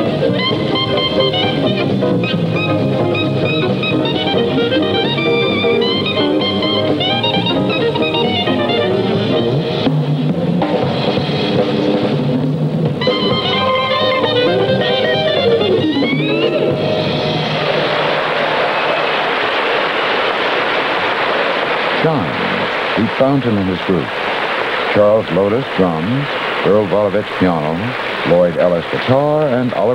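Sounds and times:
jazz group playing: 0.0s - 20.1s
audience applause: 16.6s - 29.9s.

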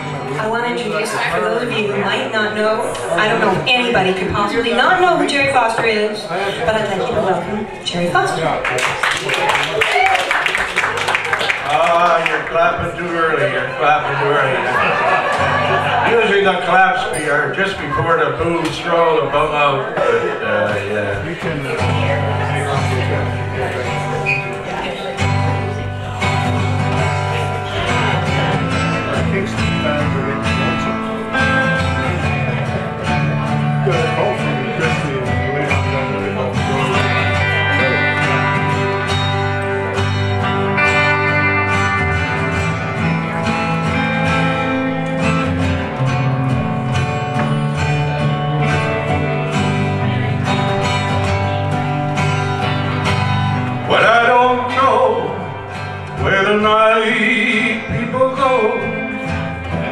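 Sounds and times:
strummed acoustic guitar: 0.0s - 8.6s, 10.8s - 59.9s
picked guitar lead lines: 0.0s - 8.8s, 10.3s - 59.9s.

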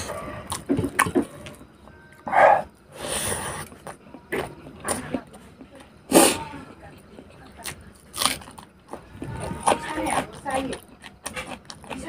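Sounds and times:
wet chewing and mouth smacks: 7.6s - 12.0s.

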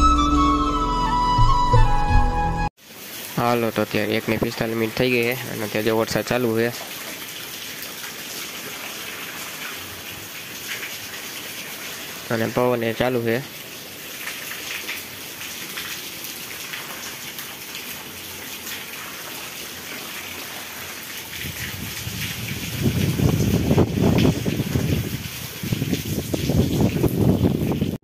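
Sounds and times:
heavy rain on a metal roof: 2.8s - 28.0s
wind buffeting microphone: 21.4s - 28.0s.

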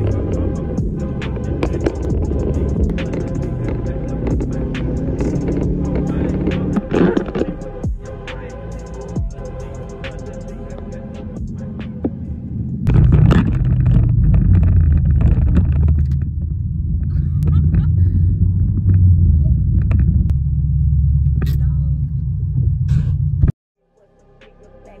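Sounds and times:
car engine rumble: 0.0s - 23.6s
road noise: 0.0s - 25.0s.

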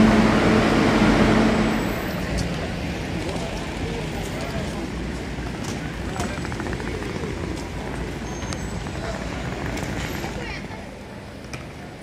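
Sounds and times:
low rumble of city noise: 0.0s - 12.0s
passers-by talking indistinctly: 1.6s - 12.0s.

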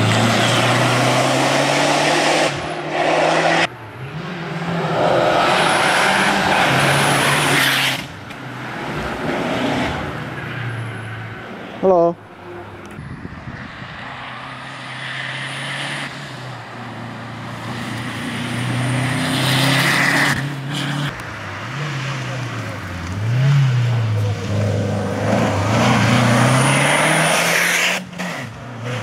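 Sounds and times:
rally car engine revving: 0.0s - 10.3s, 16.9s - 29.0s.

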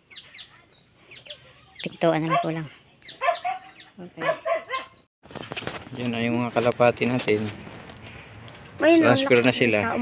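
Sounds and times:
small birds chirping: 0.0s - 5.1s.

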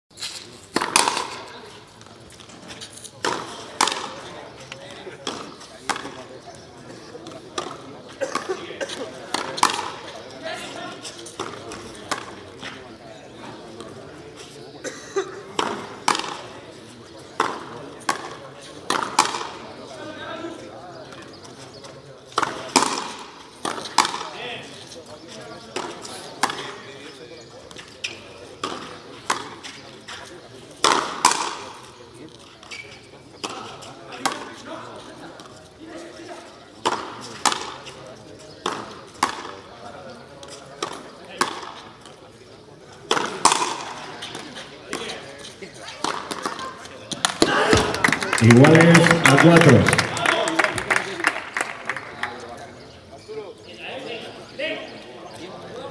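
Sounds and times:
ball struck by racquets: 0.8s - 1.4s, 3.2s - 4.2s, 17.4s - 19.6s, 22.4s - 24.4s, 30.8s - 31.6s, 38.6s - 39.6s, 43.1s - 44.0s.

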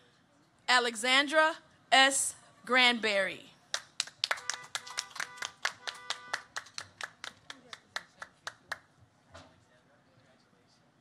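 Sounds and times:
person clapping hands: 3.7s - 8.8s.

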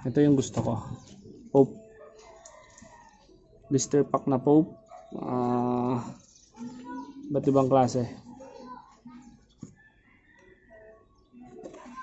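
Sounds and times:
person speaking: 5.2s - 8.3s.

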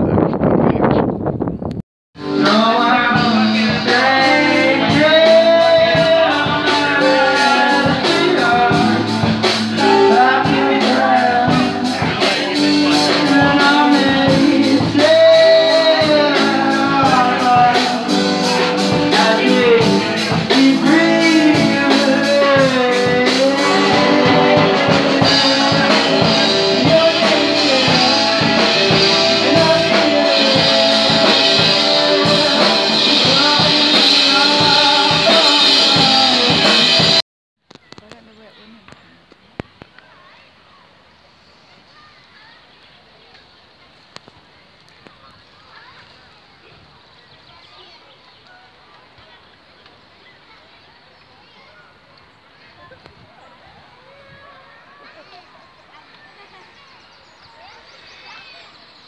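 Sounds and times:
bass guitar: 0.0s - 37.2s
drum kit beat: 2.2s - 37.2s
electric guitars: 2.2s - 37.2s
distant voices: 2.4s - 59.0s
bird calls: 39.9s - 59.0s.

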